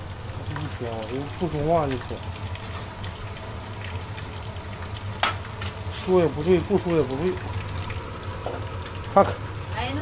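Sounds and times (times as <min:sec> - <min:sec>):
food sizzling in hot oil: 0:00.0 - 0:10.0
low steady hum: 0:00.0 - 0:10.0.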